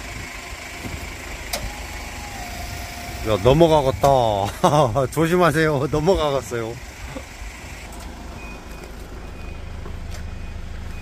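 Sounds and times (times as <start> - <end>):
forklift engine rumble: 0.0 - 11.0
faint high warning beeps: 8.4 - 9.7, 10.3 - 11.0.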